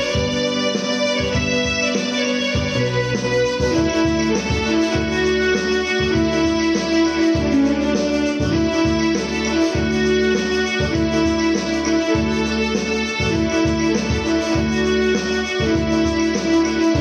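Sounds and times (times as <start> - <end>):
bass line: 0.0 - 17.0
electronic keyboard piano melody: 0.0 - 17.0.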